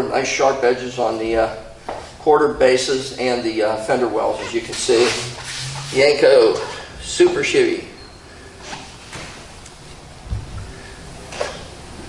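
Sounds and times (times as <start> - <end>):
soft low thump: 10.2 - 10.7.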